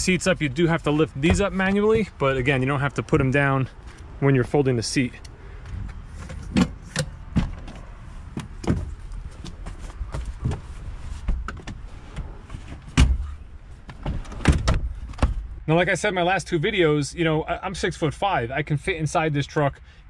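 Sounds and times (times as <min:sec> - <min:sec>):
knocks and clunks in car cabin: 0:01.2 - 0:02.2, 0:06.3 - 0:15.5.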